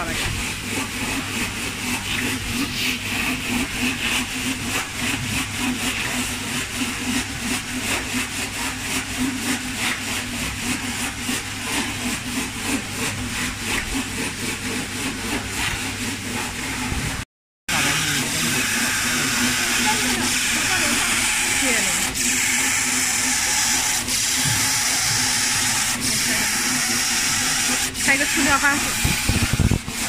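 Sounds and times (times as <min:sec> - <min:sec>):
die cutting machine running: 0:00.0 - 0:30.0.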